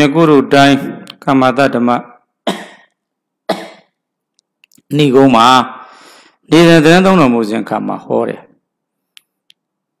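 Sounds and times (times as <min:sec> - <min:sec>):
man coughing: 0:02.4 - 0:04.0.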